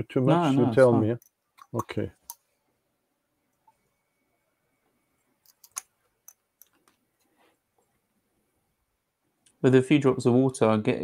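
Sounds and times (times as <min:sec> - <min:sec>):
faint clicks and knocks at desk: 0:01.2 - 0:02.5, 0:05.3 - 0:08.0.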